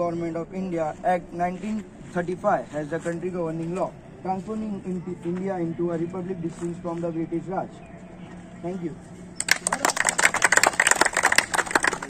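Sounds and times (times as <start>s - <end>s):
people applauding: 9.4s - 12.0s.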